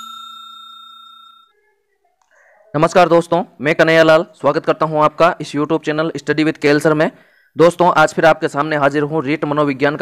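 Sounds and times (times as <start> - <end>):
notification bell chime: 0.0 - 1.5.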